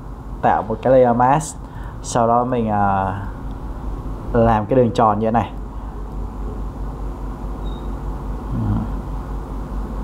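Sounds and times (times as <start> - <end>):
background hiss: 0.0 - 9.2
low electrical hum: 0.0 - 10.0
person murmuring: 8.5 - 9.0.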